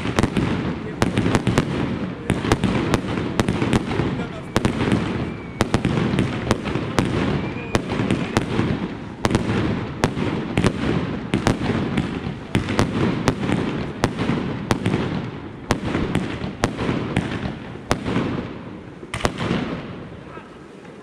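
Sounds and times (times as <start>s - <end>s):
fireworks bangs and crackles: 0.0s - 21.0s.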